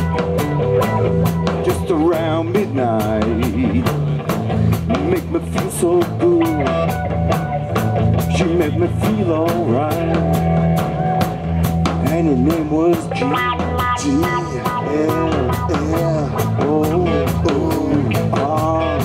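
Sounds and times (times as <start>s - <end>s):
drum kit beat: 0.0s - 19.0s
live rock band: 0.0s - 19.0s
pitch-bending lead guitar line: 0.0s - 19.0s.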